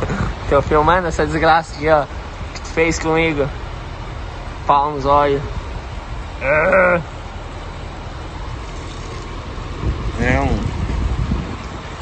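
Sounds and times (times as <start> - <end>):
low background rumble: 0.0 - 12.0
man making wavering vocal sounds: 6.4 - 7.2.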